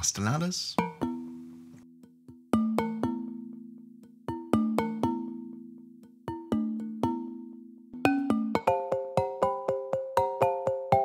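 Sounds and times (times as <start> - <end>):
glass marimba notes ringing: 0.8 - 11.0.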